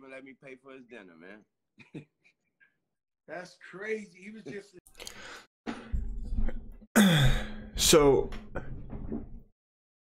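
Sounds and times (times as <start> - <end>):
man sighing: 7.0 - 7.7.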